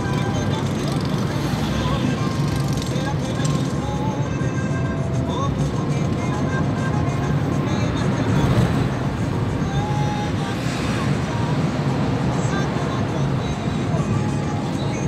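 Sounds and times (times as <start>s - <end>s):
car road noise at highway speed: 0.0s - 15.0s
engine and tyres droning: 0.0s - 15.0s.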